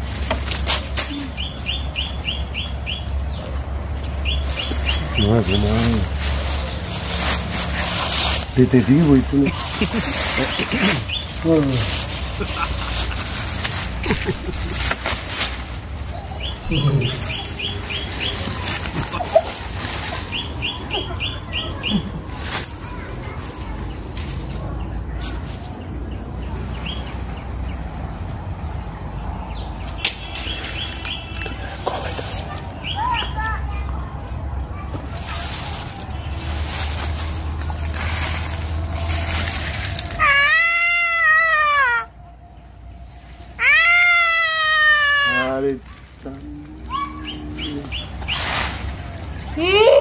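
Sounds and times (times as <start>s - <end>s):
bird chirping: 1.1s - 7.0s, 7.6s - 15.0s, 15.8s - 23.0s, 23.7s - 39.9s.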